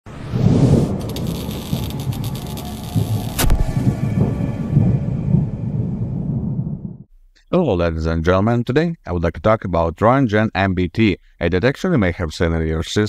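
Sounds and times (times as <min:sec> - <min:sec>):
low thunder-like rumble: 0:00.2 - 0:07.1
sharp crack: 0:00.7 - 0:04.2.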